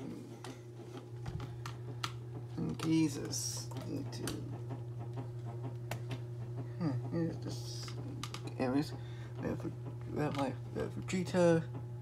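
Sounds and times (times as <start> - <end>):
electric fan humming: 0.0 - 12.0.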